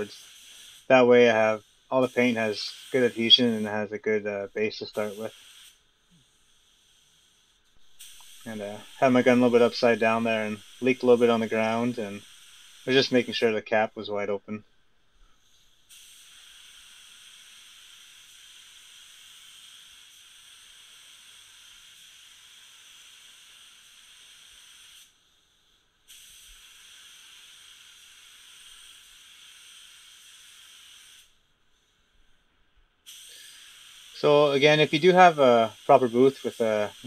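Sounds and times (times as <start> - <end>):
paint spray gun hissing: 0.0 - 14.6, 15.2 - 32.1, 33.0 - 37.0.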